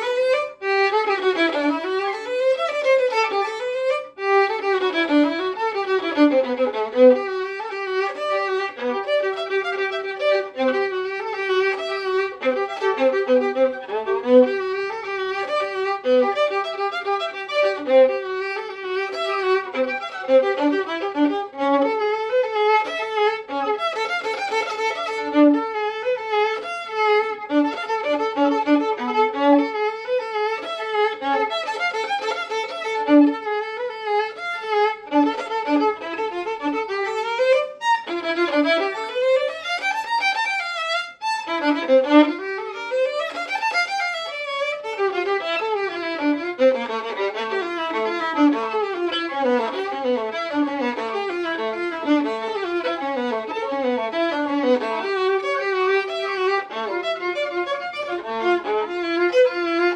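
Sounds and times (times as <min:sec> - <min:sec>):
solo violin playing: 0:00.0 - 0:59.9.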